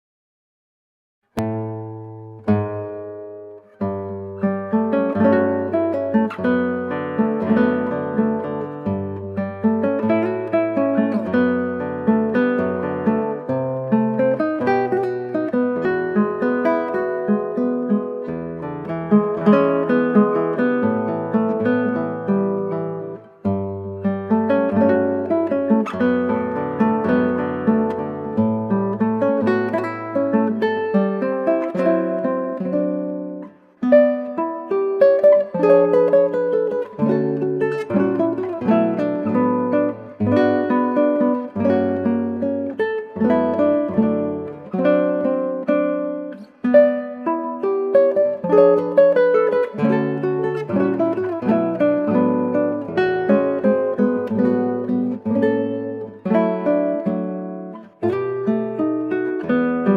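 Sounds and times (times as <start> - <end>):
classical guitar playing: 1.3 - 59.9.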